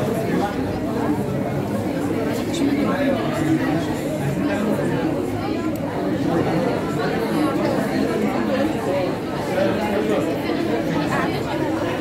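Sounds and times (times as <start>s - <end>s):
classroom chatter: 0.0s - 12.0s.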